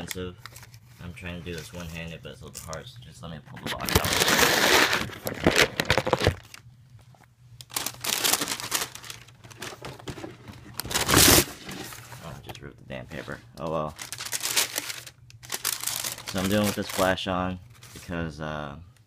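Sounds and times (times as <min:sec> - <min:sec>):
tissue paper rustling: 0:07.7 - 0:09.8, 0:14.0 - 0:18.2
cardboard shoebox opening: 0:07.7 - 0:12.2.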